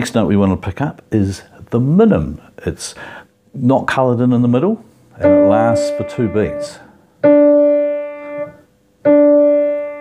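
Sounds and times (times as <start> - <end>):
piano note: 5.2 - 10.0.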